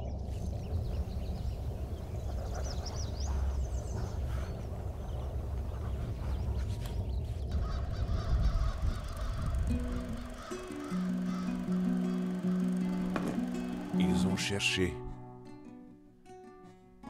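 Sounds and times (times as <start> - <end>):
steady low rumble: 0.0 - 14.0
birds chirping: 0.0 - 15.1.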